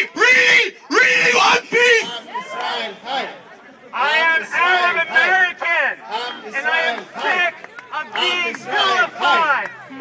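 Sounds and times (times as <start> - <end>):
man shouting through megaphone: 0.0 - 9.8
crowd shouting: 0.0 - 10.0.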